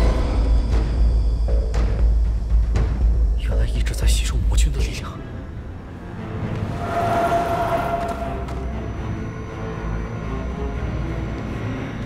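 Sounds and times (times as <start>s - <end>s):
ominous film score with rumbling drone: 0.0s - 12.0s.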